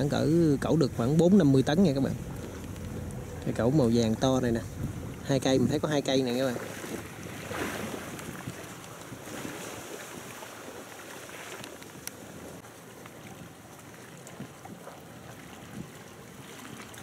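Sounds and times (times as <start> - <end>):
wind on microphone: 0.0 - 17.0.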